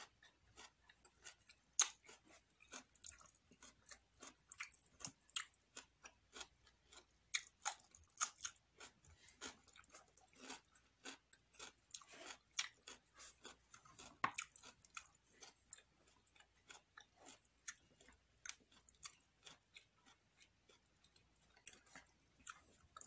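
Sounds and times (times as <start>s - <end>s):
person chewing crunchy vegetables: 0.0s - 23.0s.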